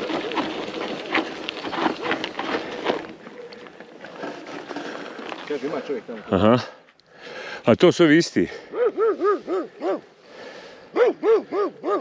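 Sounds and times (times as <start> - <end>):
dog barking: 8.7 - 10.0, 10.9 - 12.0.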